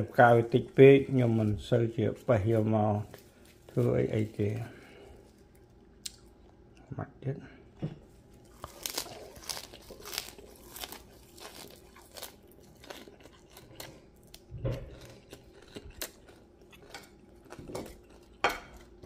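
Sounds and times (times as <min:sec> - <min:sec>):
herb leaves crackling and crunching: 0:00.0 - 0:06.3, 0:08.1 - 0:19.0.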